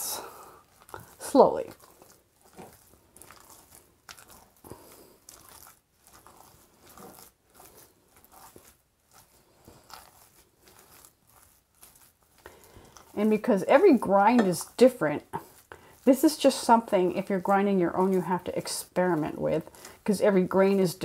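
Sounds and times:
batter stirred in glass bowl: 0.0s - 21.0s.

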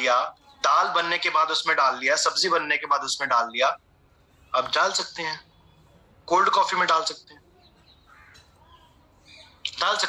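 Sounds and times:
man speaking: 0.0s - 3.8s, 4.5s - 5.4s, 6.3s - 7.4s, 9.6s - 10.0s
faint bird calls: 7.4s - 9.7s.

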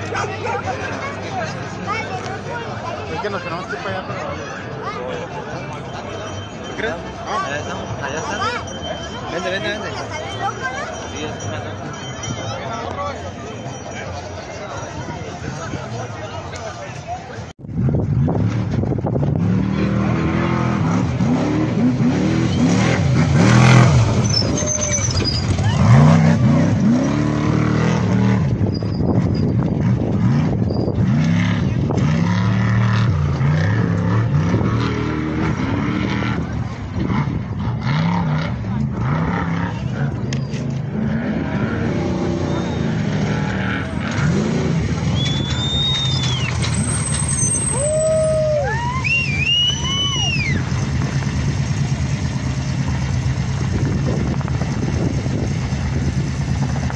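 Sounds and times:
truck engines revving: 0.0s - 56.9s.

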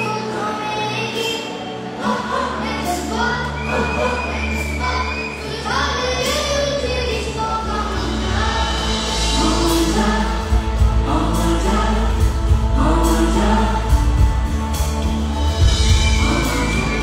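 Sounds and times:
person singing: 0.0s - 14.8s, 15.4s - 17.0s
live band playing: 0.0s - 17.0s
heavy steady bass: 7.3s - 17.0s.

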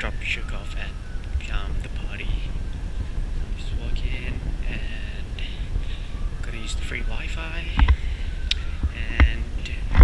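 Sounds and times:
muffled camera handling rumble: 7.7s - 10.0s.

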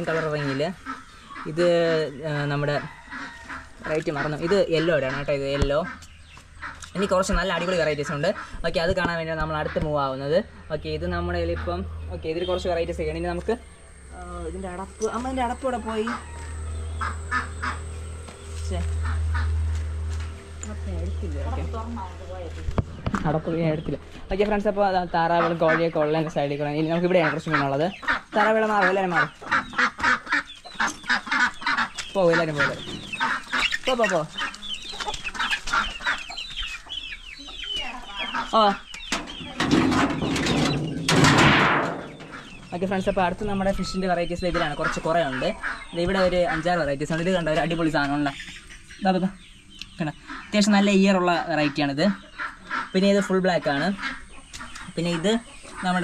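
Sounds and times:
chickens clucking: 0.0s - 56.0s
chicks peeping: 0.0s - 56.0s
low steady rumble: 10.5s - 27.1s
crow cawing: 11.4s - 21.2s, 27.0s - 36.4s.

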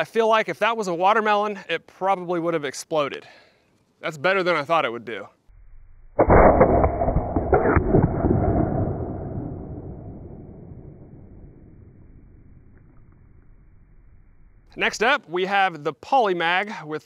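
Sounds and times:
slowed-down deep boom: 5.5s - 14.8s.

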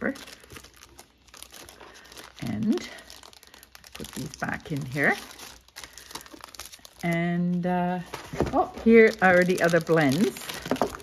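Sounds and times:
cellophane packaging crinkling: 0.0s - 11.0s.

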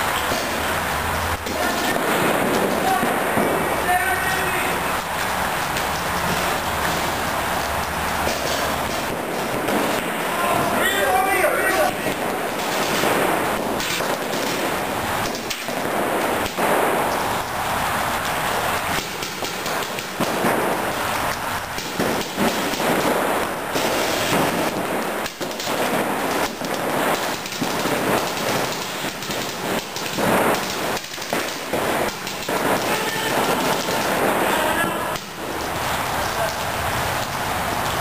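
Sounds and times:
paintball markers firing: 4.5s - 17.3s, 18.2s - 35.8s.

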